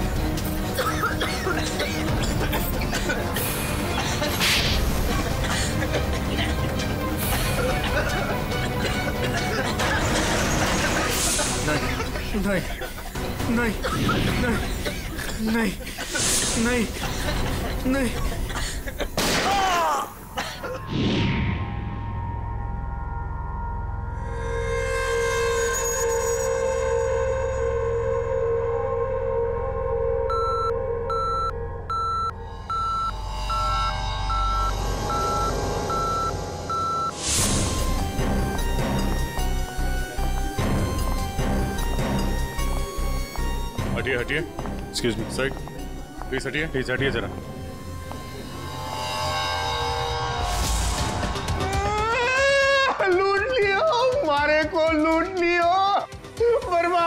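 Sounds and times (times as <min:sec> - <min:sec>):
electronic beeps: 0:30.3 - 0:37.4
low drone: 0:45.6 - 0:52.6.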